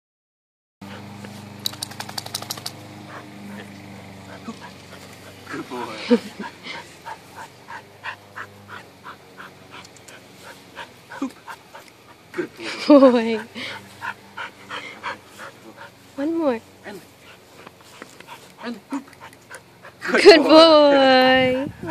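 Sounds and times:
dog panting: 0.8s - 20.6s
steady low hum: 0.8s - 21.9s
sharp clicks: 1.6s - 2.8s.

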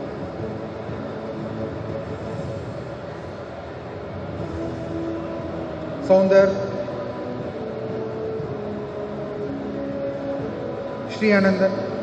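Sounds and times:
large hall rumble: 0.0s - 12.0s.

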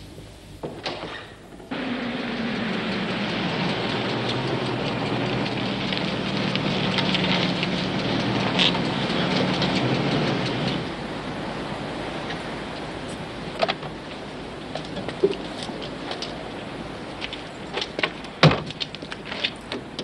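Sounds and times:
car engine running: 0.0s - 13.6s.

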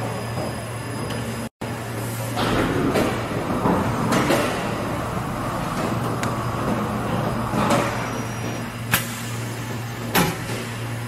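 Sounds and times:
machine humming: 1.6s - 11.0s.

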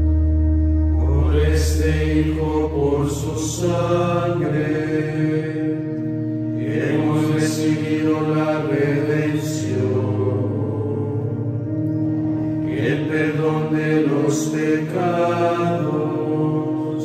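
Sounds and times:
deep bass note: 0.0s - 4.0s
sustained accompanying chords: 0.0s - 17.0s
men chanting in unison: 6.6s - 11.2s, 12.6s - 17.0s.

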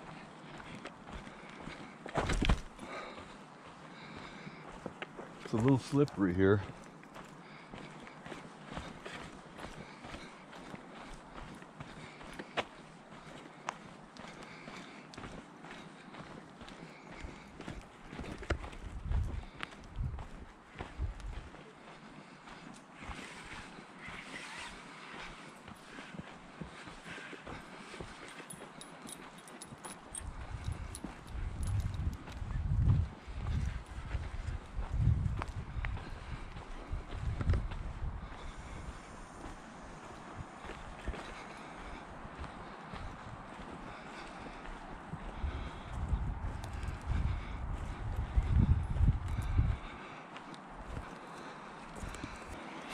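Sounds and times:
footsteps on dirt trail: 0.0s - 52.9s.

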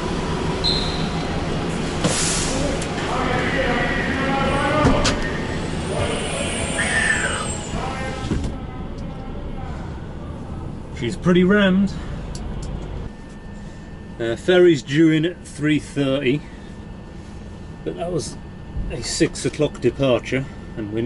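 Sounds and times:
vehicles running: 0.0s - 21.0s
echoing voices of passengers: 2.5s - 11.2s.

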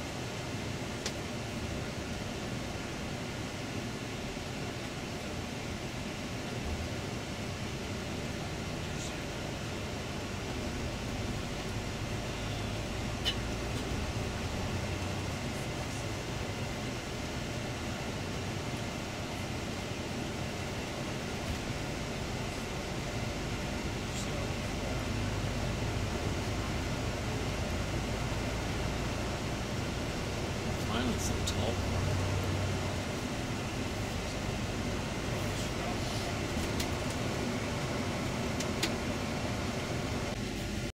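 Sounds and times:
coach engine and road noise: 0.0s - 40.9s.

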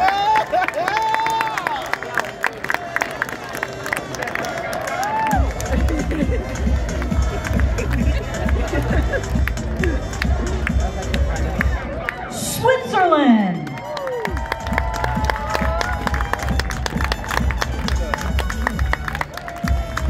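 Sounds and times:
crowd chattering and calling out: 1.8s - 20.0s
bass-heavy music over loudspeakers: 5.3s - 20.0s
sharp claps: 13.7s - 20.0s.

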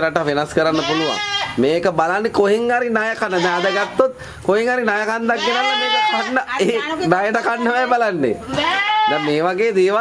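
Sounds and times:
man's voice: 0.0s - 8.4s
goat bleating: 0.6s - 1.8s, 3.1s - 4.1s, 5.1s - 9.6s.

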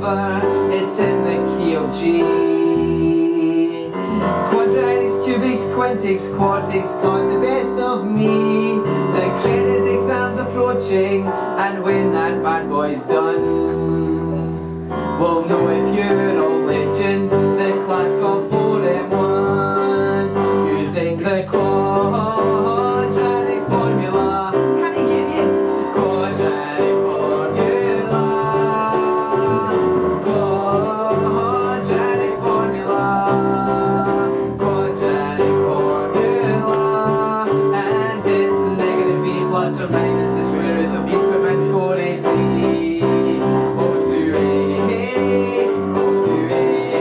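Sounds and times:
acoustic guitar: 0.0s - 47.0s
electronic keyboard piano sound: 0.0s - 47.0s
bass guitar: 3.8s - 11.3s, 12.0s - 47.0s.

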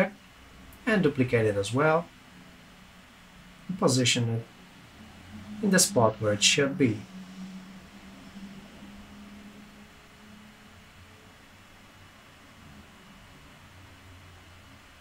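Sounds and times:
background hiss: 0.0s - 15.0s
low hum: 0.0s - 15.0s.

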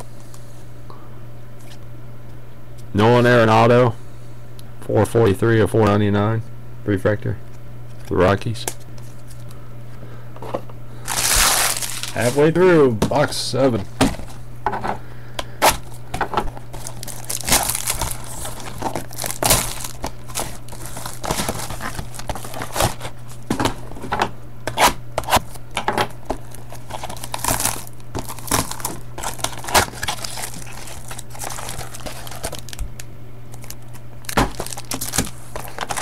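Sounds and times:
steady low hum: 0.0s - 36.0s
foil wrappers crinkling and tearing: 11.0s - 12.6s, 15.6s - 24.0s, 26.2s - 36.0s.

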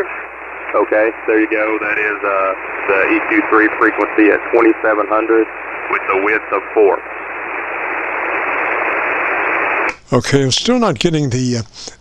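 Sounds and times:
radio receiver hiss: 0.0s - 10.8s.

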